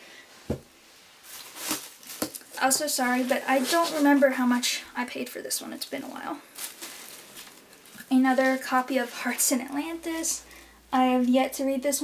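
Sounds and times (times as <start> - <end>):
paper rustle: 1.2 - 4.6, 6.6 - 9.5.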